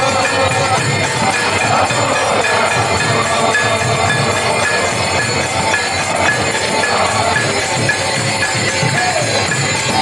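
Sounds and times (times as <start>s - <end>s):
harmonium drone: 0.0s - 10.0s.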